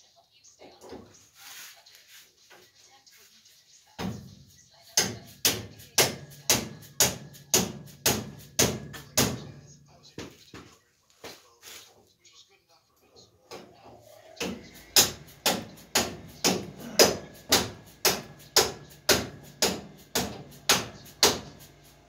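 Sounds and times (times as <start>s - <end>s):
hammer striking steel: 5.0s - 9.6s, 14.4s - 21.8s.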